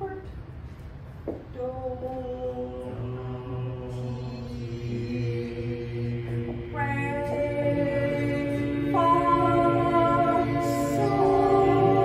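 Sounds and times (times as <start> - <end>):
group singing a sustained chord: 1.6 - 12.0.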